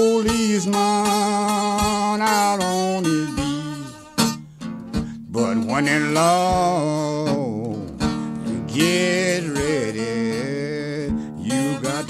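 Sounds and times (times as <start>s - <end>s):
slide guitar blues: 0.0s - 12.0s.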